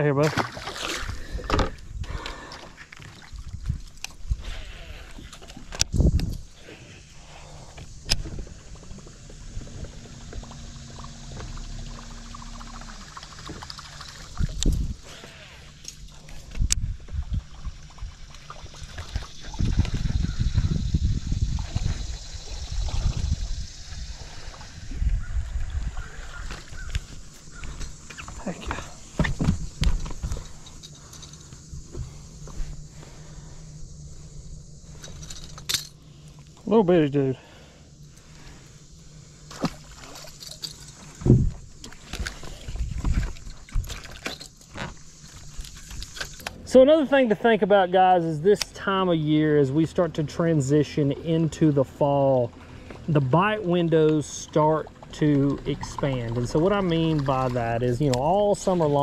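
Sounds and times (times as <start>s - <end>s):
low rumbles: 3.2s - 59.0s.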